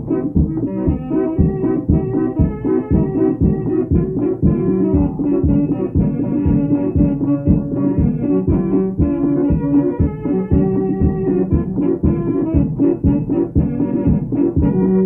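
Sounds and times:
accordion notes: 0:00.0 - 0:15.0
organ: 0:00.0 - 0:15.0
steady drumbeat: 0:00.0 - 0:15.0.

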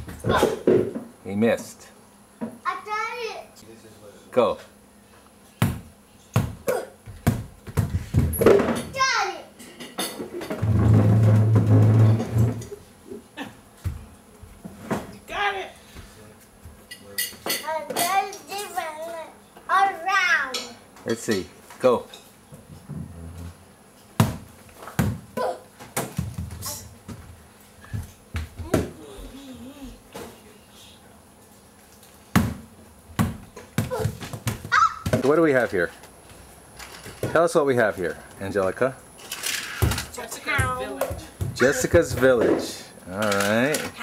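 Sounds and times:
ball bouncing on hardwood floor: 0:05.6 - 0:08.8, 0:24.2 - 0:25.3, 0:33.2 - 0:35.3, 0:40.6 - 0:42.6.

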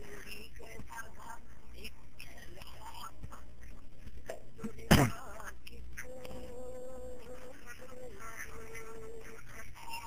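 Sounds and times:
thin steady buzzing tone: 0:00.0 - 0:10.0.

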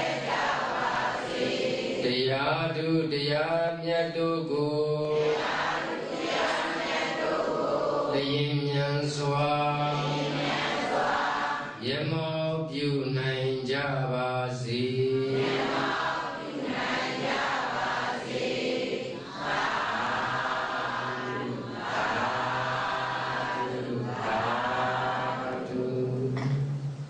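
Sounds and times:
man chanting through microphone: 0:02.0 - 0:05.9, 0:08.0 - 0:10.8, 0:11.6 - 0:16.4, 0:19.2 - 0:27.0.

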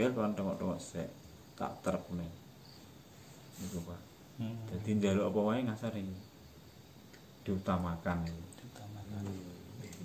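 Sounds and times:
insects chirping: 0:00.0 - 0:10.0
man speaking: 0:03.6 - 0:06.2, 0:07.4 - 0:10.0.

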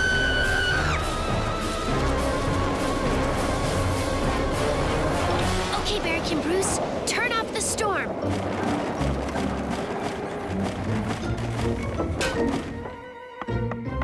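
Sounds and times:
background music: 0:00.0 - 0:07.1, 0:07.8 - 0:14.0.

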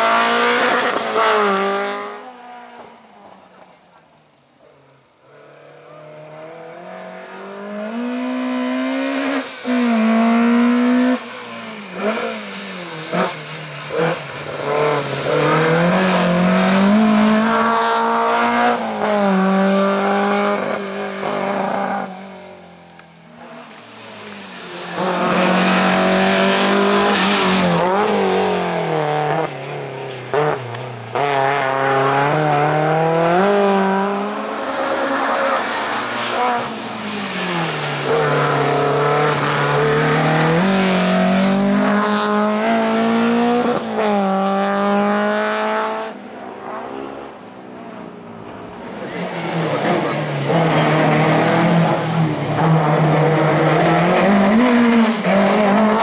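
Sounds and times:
race car engine revving: 0:05.6 - 0:23.0, 0:24.8 - 0:29.6, 0:30.3 - 0:47.4, 0:48.5 - 0:56.0.

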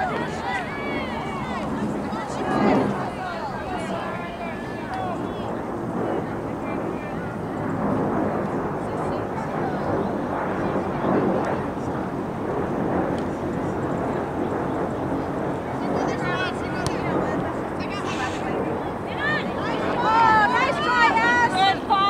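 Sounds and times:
faint distant voices: 0:00.0 - 0:22.0
steady rushing noise: 0:00.0 - 0:22.0.

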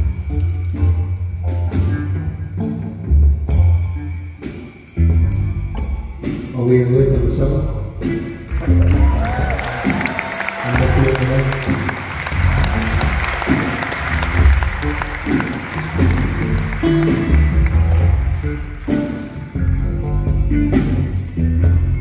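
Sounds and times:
live band playing: 0:00.0 - 0:22.0
steady cymbal beat: 0:03.4 - 0:10.0, 0:11.5 - 0:22.0
audience applause: 0:08.5 - 0:19.5.

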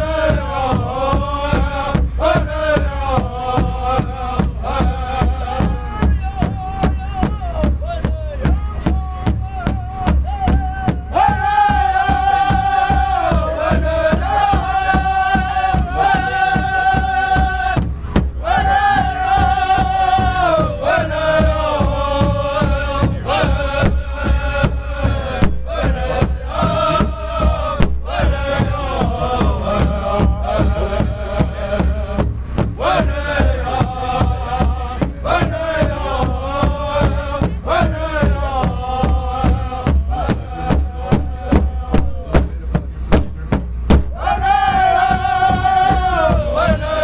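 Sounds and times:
group singing high in chorus: 0:00.0 - 0:07.2, 0:10.9 - 0:42.2, 0:44.1 - 0:47.0
large drum beating: 0:00.0 - 0:47.0.

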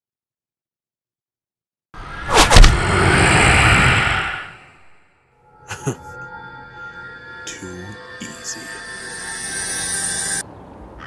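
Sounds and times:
hissing riser with steady tones: 0:02.0 - 0:07.4.

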